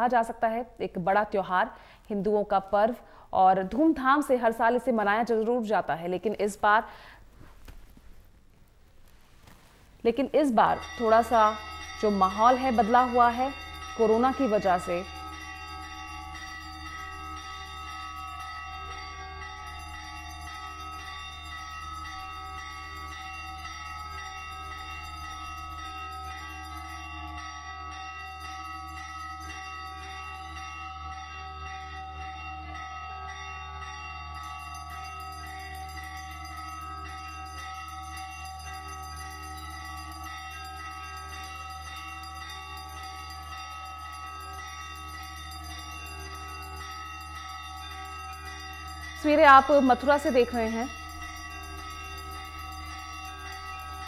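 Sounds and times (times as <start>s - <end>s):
bell-like chimes ringing: 10.5s - 54.0s.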